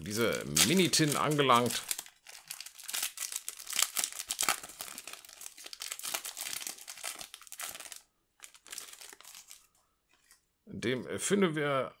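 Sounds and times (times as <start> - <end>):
foil wrapper crinkling and tearing: 0.1 - 10.4.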